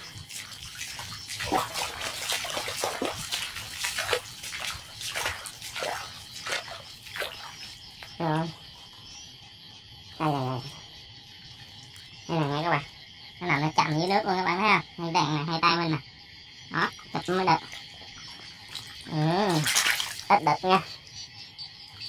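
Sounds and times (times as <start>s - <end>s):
splashing through shallow water: 0.0s - 8.8s, 17.0s - 20.9s
frogs croaking: 0.0s - 22.0s
insects trilling: 0.0s - 22.0s.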